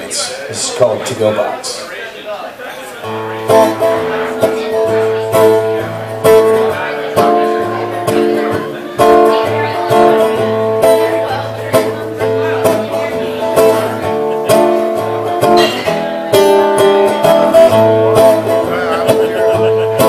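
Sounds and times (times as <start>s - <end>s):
acoustic guitar strumming: 2.9s - 20.0s.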